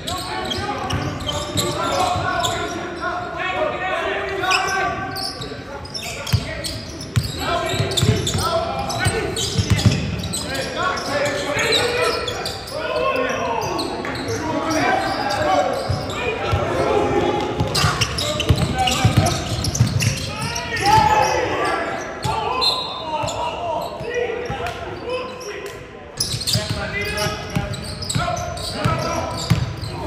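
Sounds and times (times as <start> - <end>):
players calling out: 0.0 - 30.0
basketball bouncing on wooden court: 7.2 - 8.4, 9.0 - 10.2, 17.6 - 20.3, 28.8 - 29.8.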